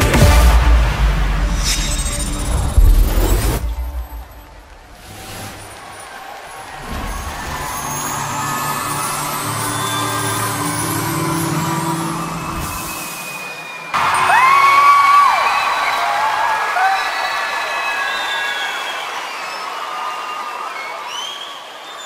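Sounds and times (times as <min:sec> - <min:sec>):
broadcast music: 0:00.0 - 0:04.8, 0:07.6 - 0:15.0
arena crowd cheering: 0:00.0 - 0:22.0.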